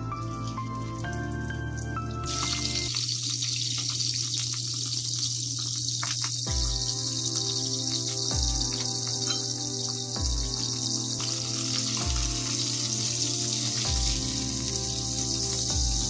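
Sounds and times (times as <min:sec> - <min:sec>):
background music: 0:00.0 - 0:02.9, 0:06.5 - 0:16.0
fish sizzling in hot oil: 0:00.0 - 0:16.0.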